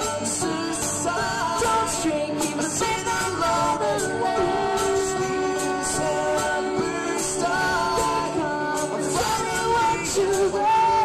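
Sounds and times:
folk-rock band playing loud: 0:00.0 - 0:11.0.

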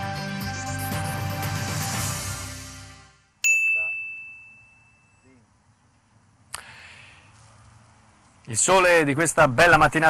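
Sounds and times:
intro music: 0:00.0 - 0:03.4
bright bell ding: 0:03.4 - 0:05.4.

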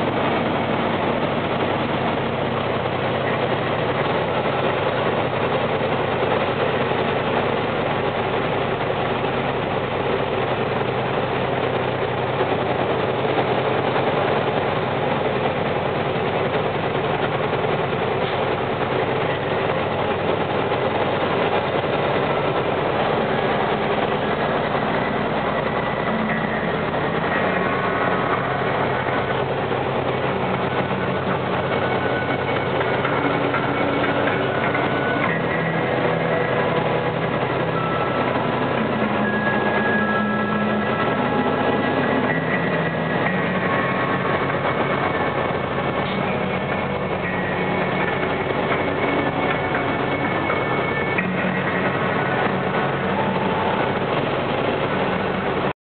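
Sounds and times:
faint shifting tones: 0:00.0 - 0:55.7
vehicle engine and tyre drone: 0:00.0 - 0:55.8.

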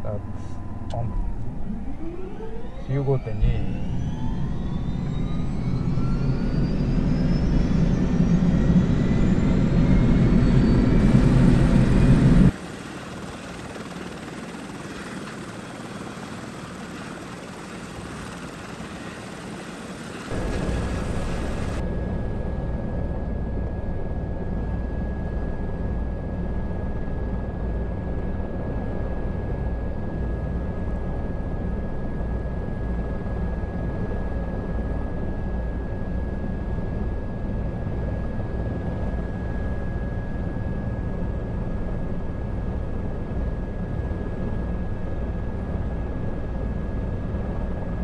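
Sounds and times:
helicopter turbine engine whine: 0:00.0 - 0:48.0
low engine rumble: 0:09.7 - 0:21.8.

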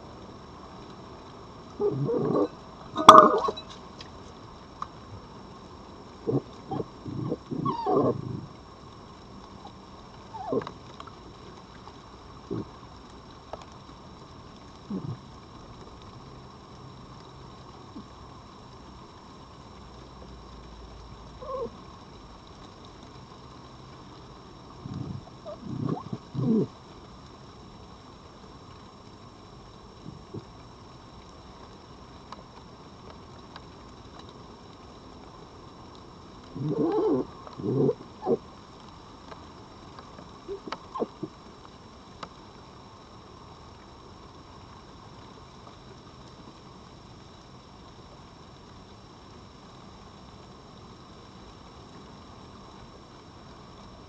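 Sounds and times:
foxes calling: 0:01.8 - 0:03.8, 0:06.3 - 0:08.5, 0:10.4 - 0:10.7, 0:21.4 - 0:21.7, 0:24.8 - 0:26.7, 0:36.5 - 0:38.4, 0:40.5 - 0:41.3.

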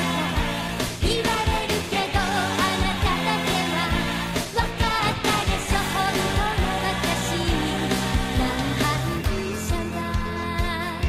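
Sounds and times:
woman singing pop song with band: 0:01.0 - 0:11.0.

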